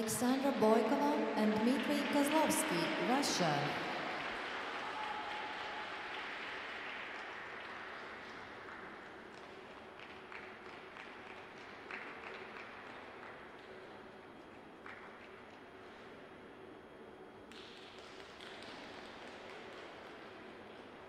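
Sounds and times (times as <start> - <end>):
audience applause: 4.1 - 12.9.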